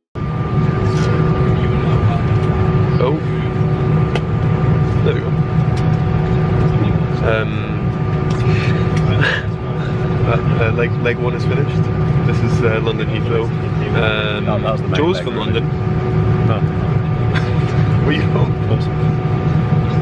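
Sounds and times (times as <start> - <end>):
aircraft cabin rumble: 0.2 - 20.0
faint passenger voices: 0.2 - 20.0.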